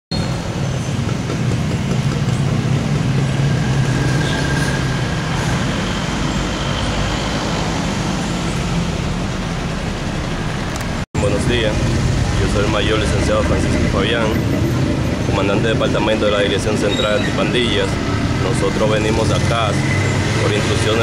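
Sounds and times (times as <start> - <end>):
road traffic rumble: 0.1 - 21.0
vehicle engine running: 8.0 - 16.8.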